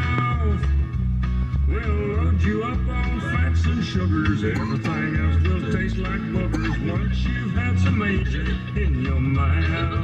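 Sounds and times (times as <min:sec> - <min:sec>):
country rock jingle music: 0:00.0 - 0:10.0
person singing: 0:01.7 - 0:10.0.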